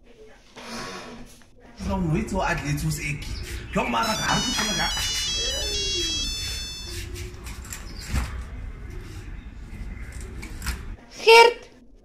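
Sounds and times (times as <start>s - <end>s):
high-pitched electronic tune: 2.4s - 7.1s.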